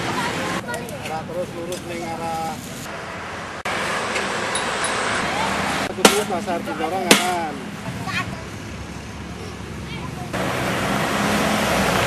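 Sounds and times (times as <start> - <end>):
steady rushing outdoor noise: 0.0 - 12.0.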